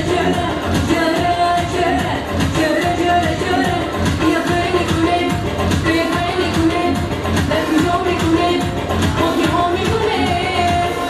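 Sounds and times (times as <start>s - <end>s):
amplified pop backing music: 0.0s - 11.0s
woman singing into a microphone: 0.0s - 11.0s.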